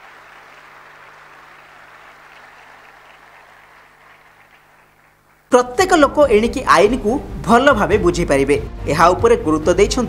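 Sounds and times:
audience applause: 0.0 - 5.5
low electrical hum: 0.0 - 8.6.

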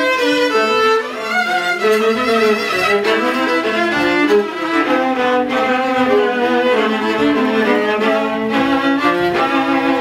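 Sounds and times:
violas playing a bowed duet: 0.0 - 10.0.

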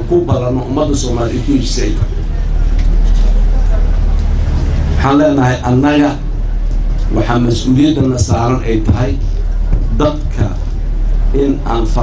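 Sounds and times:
faint background noise: 0.0 - 12.0
low rumble and hum: 0.0 - 12.0.

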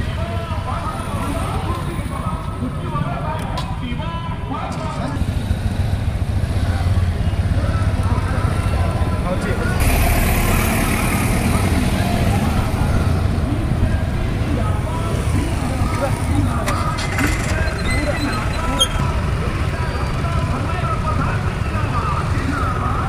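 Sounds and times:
people talking: 0.0 - 5.3, 6.6 - 23.0
vehicle engine rumbling: 0.0 - 23.0.

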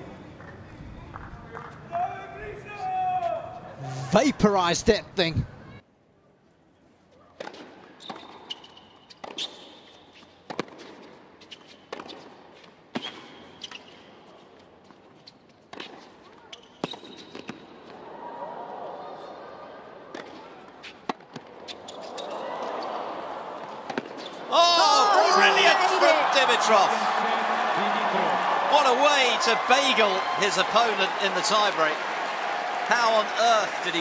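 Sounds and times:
crowd noise: 3.5 - 5.8, 21.4 - 34.0
shoe squeaks: 8.0 - 10.4, 11.4 - 14.5, 16.2 - 17.5, 21.6 - 22.4, 24.2 - 24.4.

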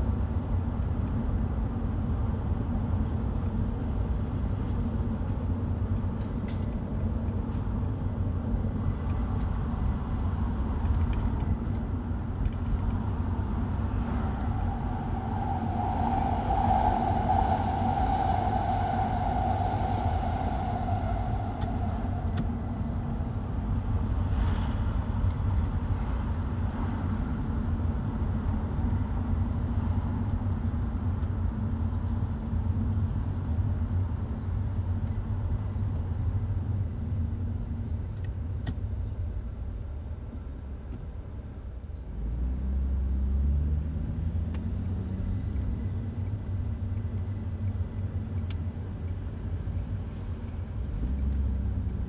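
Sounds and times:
car road and engine rumble: 0.0 - 52.0
mid-pitched hum: 10.7 - 26.0.

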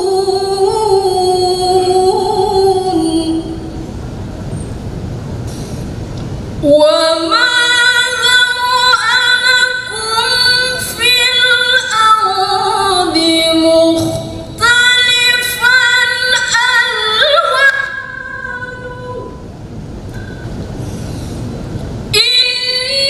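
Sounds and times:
woman reciting melodically: 0.0 - 3.8, 6.6 - 19.4, 22.1 - 23.0
low rumbling noise: 0.0 - 23.0.

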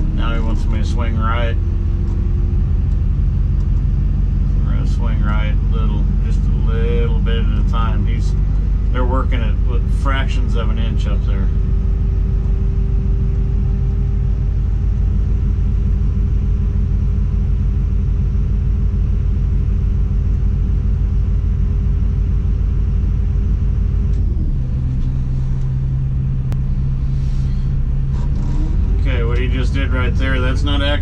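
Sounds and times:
diesel engine running: 0.0 - 31.0.

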